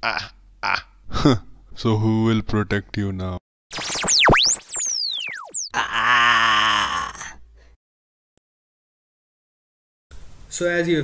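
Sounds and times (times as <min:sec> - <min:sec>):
cartoon electric zap: 0:03.7 - 0:05.7
wavering vocal groan: 0:05.8 - 0:07.4.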